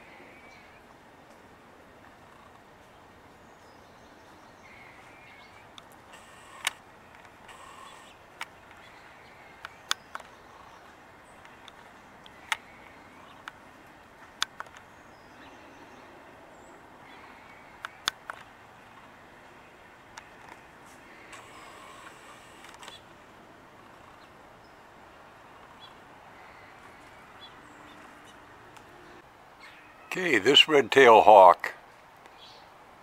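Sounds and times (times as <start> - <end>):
faint bird calls: 2.0 - 30.2
sharp clicks: 5.8 - 8.9, 14.4 - 14.9, 17.8 - 18.5, 21.2 - 23.0.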